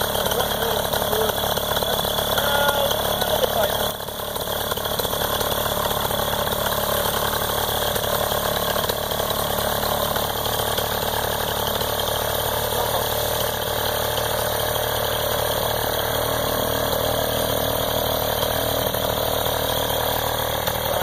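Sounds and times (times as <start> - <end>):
paramotor engine idling: 0.0 - 21.0.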